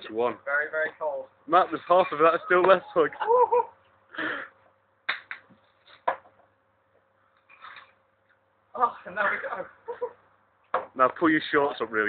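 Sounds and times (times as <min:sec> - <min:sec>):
breathy sounds: 0:04.1 - 0:04.6.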